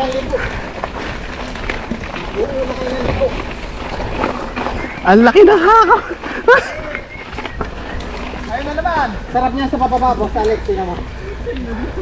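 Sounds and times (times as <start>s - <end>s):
bike clicks and rattles: 0.0s - 11.7s
bike tyres on dirt trail: 0.0s - 12.0s.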